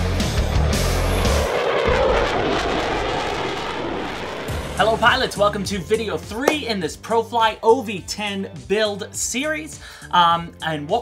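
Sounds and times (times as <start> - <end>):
rushing sound effect: 0.0 - 5.7.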